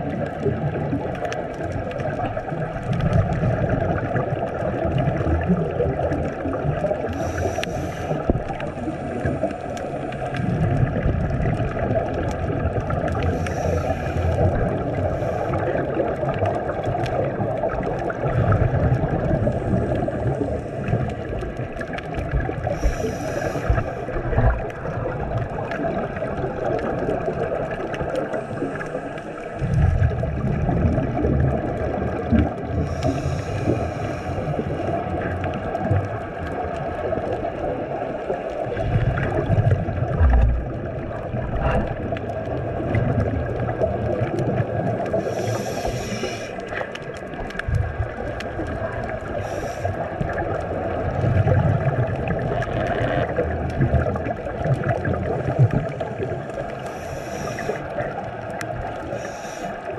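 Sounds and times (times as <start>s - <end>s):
exhaled bubbles rumbling: 0.0s - 59.9s
steady underwater hiss: 0.0s - 59.9s
regulator inhale hiss: 7.1s - 10.4s, 13.2s - 15.9s, 22.6s - 24.4s, 28.3s - 29.6s, 32.7s - 34.9s, 45.1s - 46.8s, 49.3s - 50.2s, 56.7s - 58.0s, 59.0s - 59.9s.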